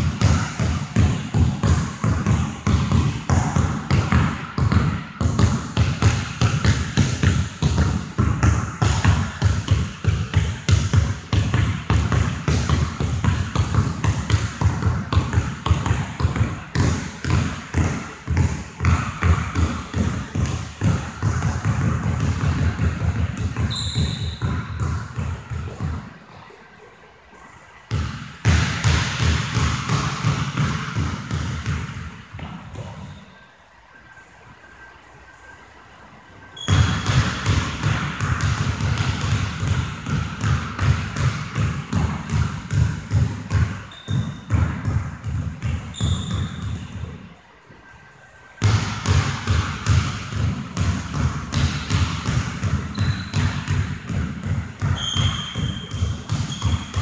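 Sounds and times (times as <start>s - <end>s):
basketball bouncing: 0.0s - 26.2s, 27.9s - 33.2s, 36.6s - 47.2s, 48.6s - 57.0s
sneaker squeaks: 17.0s - 27.6s, 32.4s - 33.6s, 36.5s - 38.0s, 43.5s - 44.8s, 45.7s - 47.4s, 51.6s - 53.8s, 54.8s - 57.0s.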